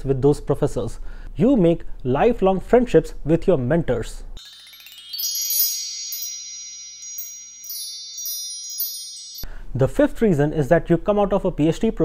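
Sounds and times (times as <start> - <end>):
high bell-like tones ringing: 4.4 - 9.6
light tinkling strikes: 4.4 - 9.6.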